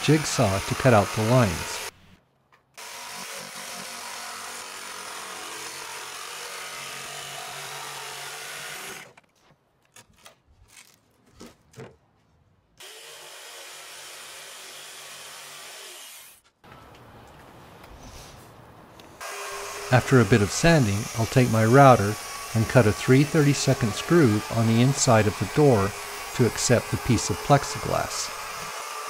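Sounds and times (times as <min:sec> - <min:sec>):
jigsaw cutting through plywood: 0:00.0 - 0:01.9, 0:02.8 - 0:09.2, 0:12.8 - 0:16.4, 0:19.2 - 0:29.0.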